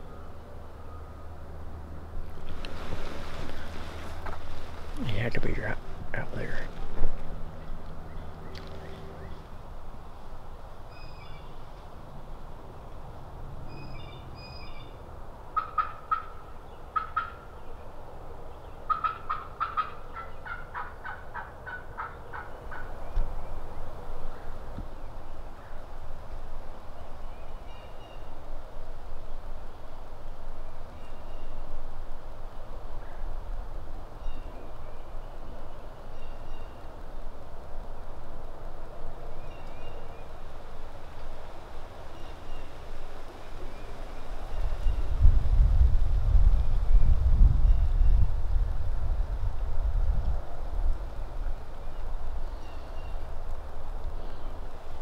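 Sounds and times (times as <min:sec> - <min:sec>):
small birds chirping: 0:07.5 - 0:09.5
turkey call yelps: 0:15.6 - 0:16.4, 0:17.0 - 0:17.4, 0:18.9 - 0:22.9.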